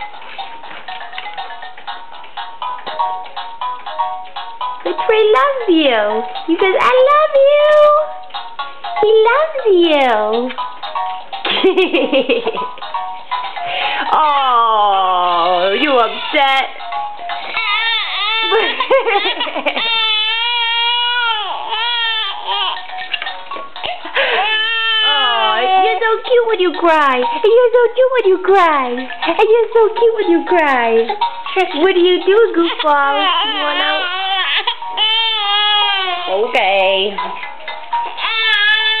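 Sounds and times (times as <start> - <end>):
baby crying: 14.2 - 16.7, 17.3 - 23.0, 24.2 - 26.0, 32.6 - 36.7, 38.0 - 39.0.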